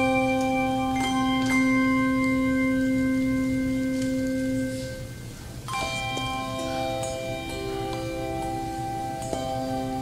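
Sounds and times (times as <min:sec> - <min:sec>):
handbell choir ringing chord: 0:00.0 - 0:10.0.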